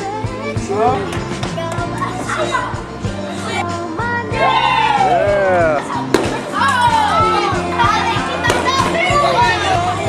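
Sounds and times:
background music with beat: 0.0 - 10.0
children shouting and chattering: 0.0 - 10.0.

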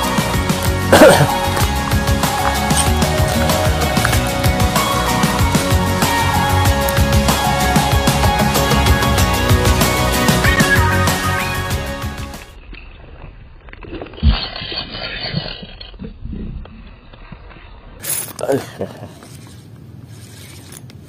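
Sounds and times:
background music: 0.0 - 12.6
fishing reel gears ticking: 19.2 - 21.0.

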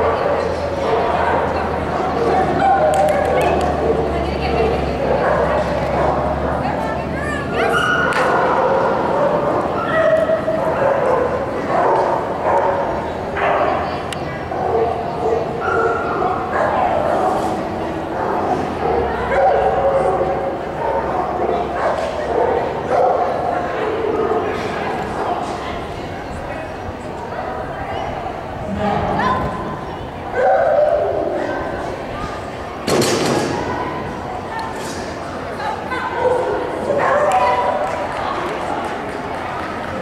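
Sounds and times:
people chattering: 0.0 - 40.0
dogs barking and yipping: 2.2 - 6.6, 7.6 - 17.5, 18.1 - 25.6, 29.2 - 31.8.

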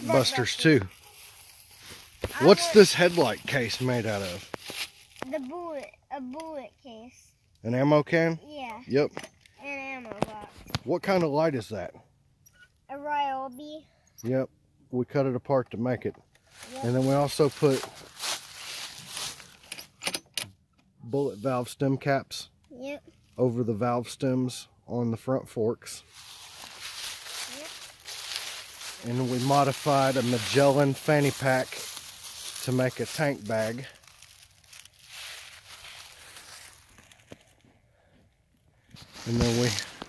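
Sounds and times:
footsteps crunching dry leaves: 0.0 - 5.5, 16.5 - 19.6, 26.0 - 37.7, 38.9 - 40.0.

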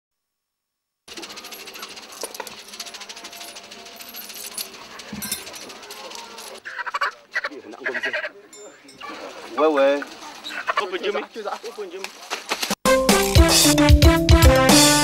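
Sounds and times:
rapid clicking rattle: 1.1 - 6.6
faint voices: 1.1 - 12.1.

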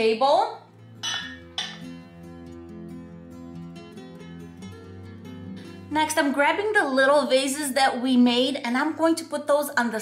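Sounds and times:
background music sustained notes: 0.0 - 10.0
china plate clinking: 1.0 - 1.9.

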